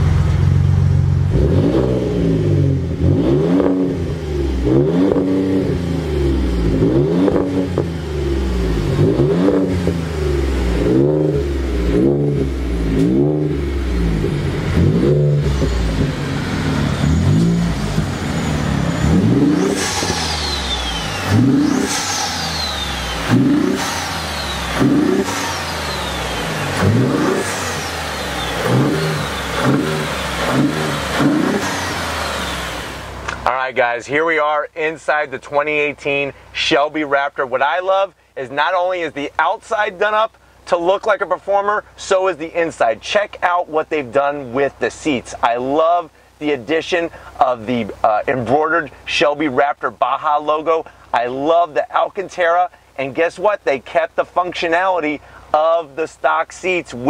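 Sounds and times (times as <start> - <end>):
engine revving: 0.0 - 33.6.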